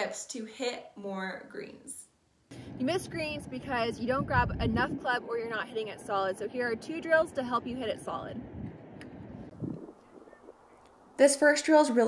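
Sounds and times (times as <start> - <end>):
low wind rumble on microphone: 2.6 - 10.8.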